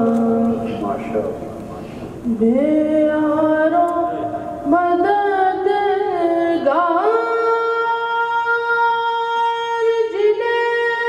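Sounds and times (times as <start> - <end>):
boy chanting into microphone: 0.0 - 1.3, 2.2 - 11.0.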